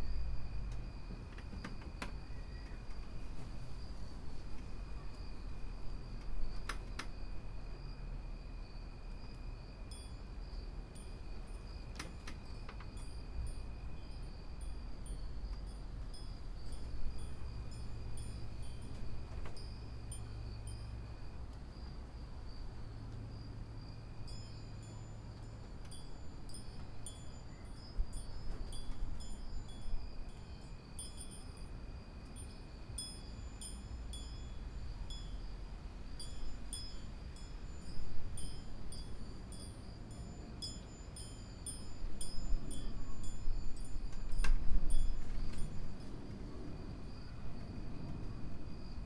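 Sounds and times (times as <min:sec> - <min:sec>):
wind chimes tinkling: 0:09.8 - 0:21.2, 0:24.0 - 0:46.2.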